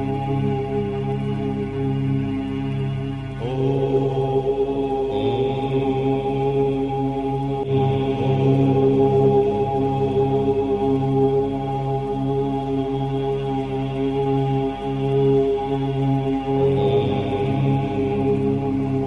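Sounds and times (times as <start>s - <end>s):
voices chanting om drones: 0.0s - 19.0s.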